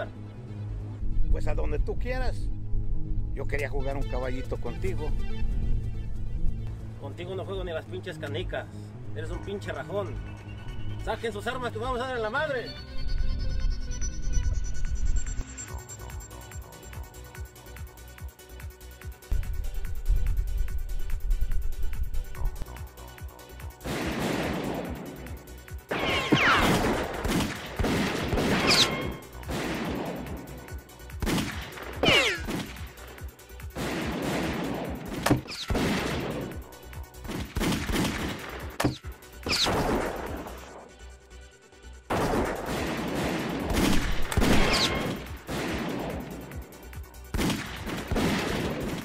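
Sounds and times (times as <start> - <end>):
pistol shots: 25.9 - 30.6, 31.2 - 33.0, 33.8 - 36.6, 37.2 - 40.7, 42.1 - 46.5, 47.3 - 49.0.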